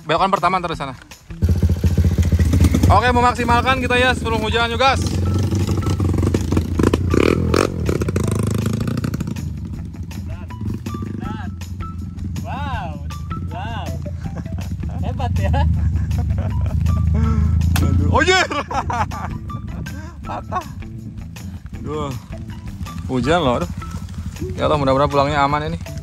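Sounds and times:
dirt bike engine running: 0:00.2 - 0:26.0
low bass: 0:00.7 - 0:26.0.

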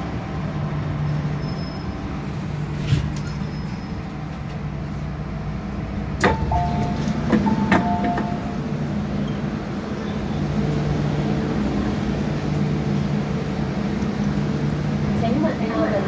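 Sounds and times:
stopped train humming: 0:00.0 - 0:16.0
sliding doors opening: 0:01.1 - 0:04.7, 0:06.1 - 0:14.5
train doors clunking: 0:06.1 - 0:11.2.

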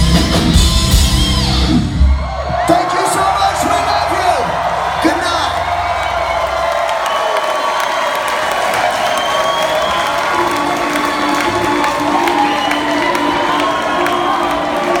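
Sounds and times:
crowd cheering and applauding: 0:00.0 - 0:15.0.

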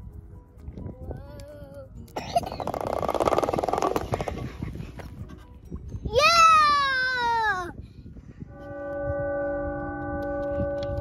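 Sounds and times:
child's voice: 0:00.9 - 0:02.1, 0:06.0 - 0:07.8
roller slide rattling: 0:02.4 - 0:05.0.

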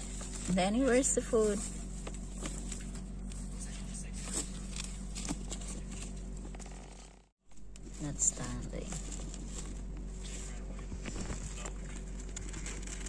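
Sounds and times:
faint clicks and rustles: 0:00.0 - 0:13.0
low background hum: 0:00.0 - 0:13.0.

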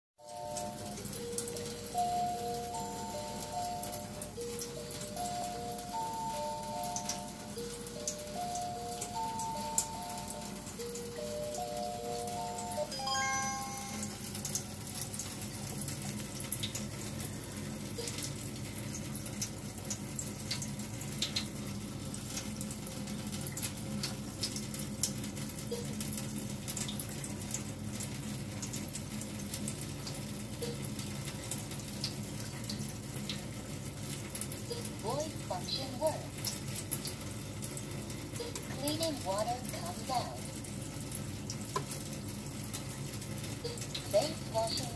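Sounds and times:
stepped electronic melody: 0:00.3 - 0:14.6.

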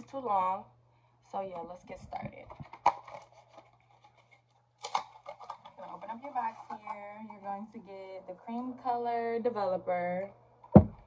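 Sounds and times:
rustling and scratching of box: 0:02.6 - 0:07.2.

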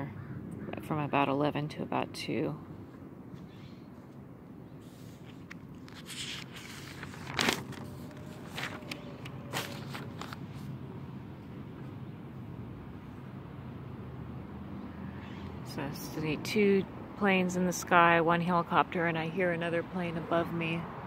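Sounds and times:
aircraft drone overhead: 0:00.0 - 0:17.2
notebook pages turning: 0:04.8 - 0:10.7.

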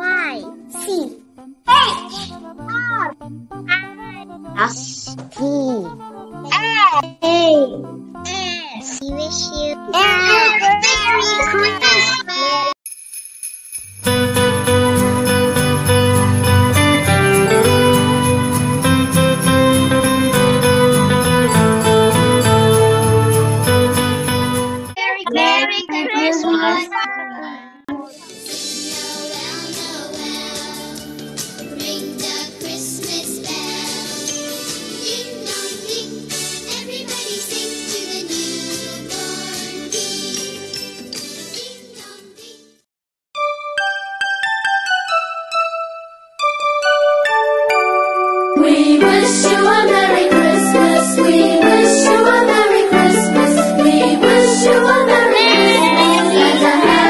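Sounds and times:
background music with low held notes: 0:00.0 - 0:12.1, 0:48.6 - 0:57.0
background music: 0:00.0 - 0:12.4, 0:14.0 - 0:25.6, 0:27.9 - 0:42.6, 0:43.4 - 0:57.0
children singing: 0:34.9 - 0:40.3, 0:48.6 - 0:57.0.

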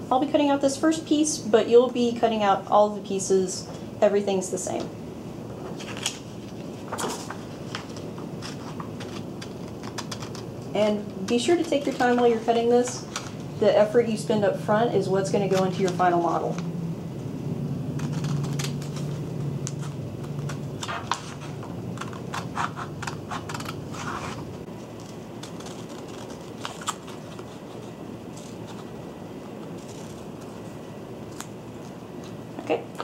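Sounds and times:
scissors snipping paper: 0:25.0 - 0:28.9.

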